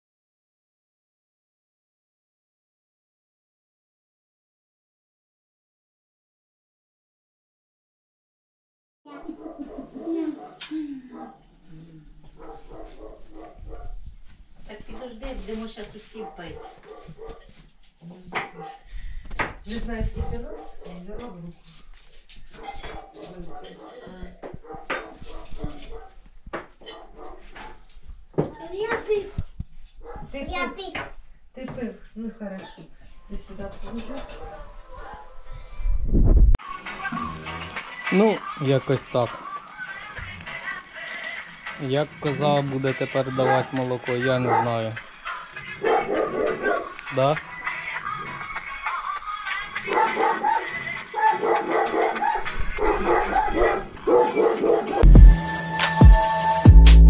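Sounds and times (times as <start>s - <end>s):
dog barking and whining: 9.2s - 10.6s, 12.4s - 14.0s, 16.2s - 17.5s, 22.5s - 26.2s, 26.8s - 27.8s, 30.0s - 30.4s, 44.4s - 44.8s, 45.8s - 47.0s, 49.9s - 55.1s.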